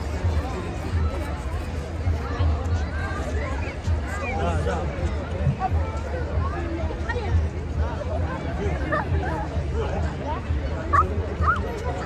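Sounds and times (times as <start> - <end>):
outdoor crowd chatter: 0.0 - 12.0.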